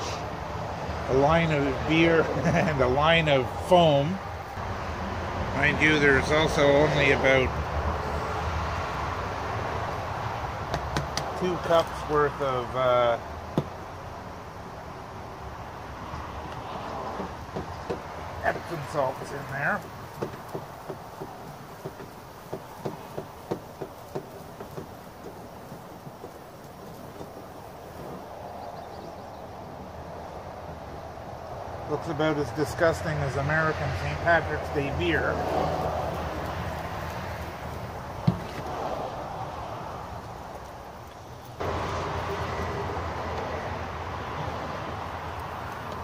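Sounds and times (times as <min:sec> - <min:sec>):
faint steady background noise: 0:00.0 - 0:46.0.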